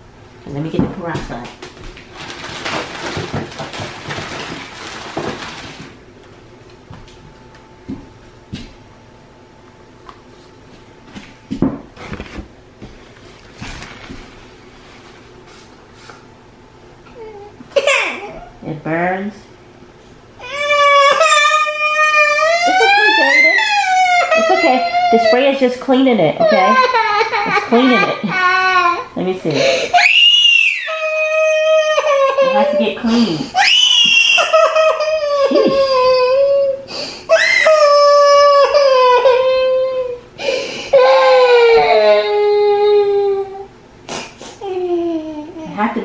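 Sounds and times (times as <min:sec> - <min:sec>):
faint steady hum: 0:00.0 - 0:46.0
household rustling and clattering: 0:00.6 - 0:06.0, 0:10.7 - 0:16.3
boy crying and wailing: 0:20.4 - 0:25.5, 0:26.4 - 0:29.1, 0:29.9 - 0:40.2, 0:40.9 - 0:43.7.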